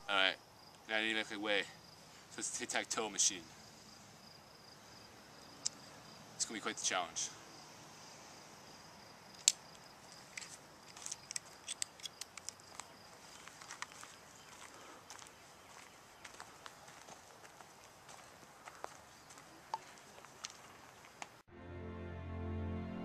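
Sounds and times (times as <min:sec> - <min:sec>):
footsteps on wood chips: 0:12.7 - 0:21.2.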